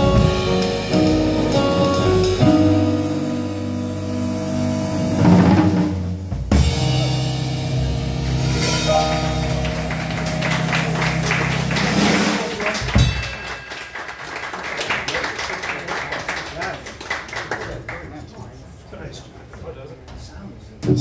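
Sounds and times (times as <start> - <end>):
keyboard chords: 0.0 - 5.8, 6.5 - 13.2
upright bass: 0.0 - 13.1
drum kit: 0.0 - 14.2.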